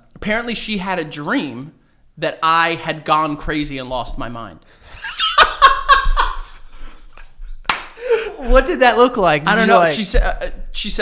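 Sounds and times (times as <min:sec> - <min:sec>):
man laughing hard: 0:04.9 - 0:07.3, 0:08.0 - 0:08.5.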